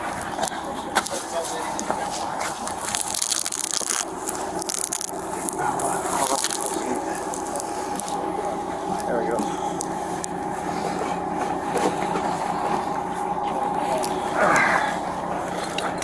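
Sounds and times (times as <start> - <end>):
steady machine hum: 0.0 - 16.0.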